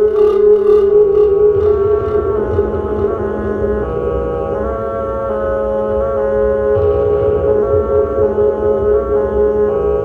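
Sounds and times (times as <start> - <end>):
electronic drone tone: 0.0 - 10.0.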